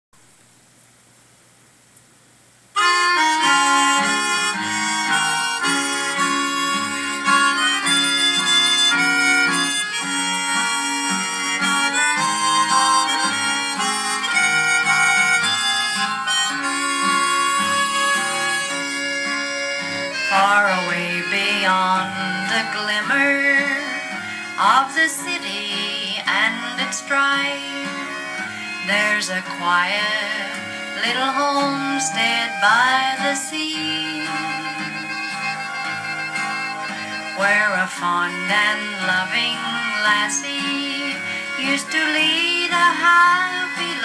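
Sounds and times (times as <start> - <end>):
faint hiss: 0.2 - 3.0
old-time country song: 2.8 - 44.0.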